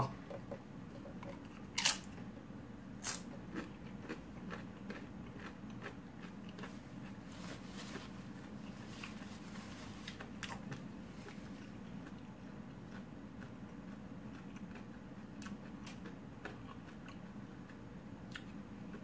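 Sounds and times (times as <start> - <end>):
chip crunching and chewing: 1.3 - 2.4, 3.0 - 7.3, 8.0 - 19.0.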